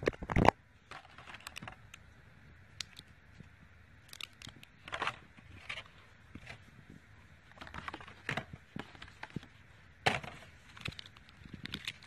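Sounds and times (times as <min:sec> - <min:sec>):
plastic tray clicks and rustles: 0:00.0 - 0:02.0, 0:07.5 - 0:09.5, 0:10.1 - 0:12.0.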